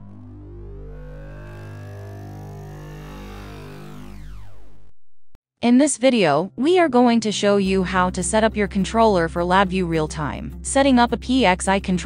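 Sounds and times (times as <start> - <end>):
layered synth tones: 0.0 - 4.9
deep electronic drone: 0.0 - 5.3
faint high rising tones: 0.0 - 5.3.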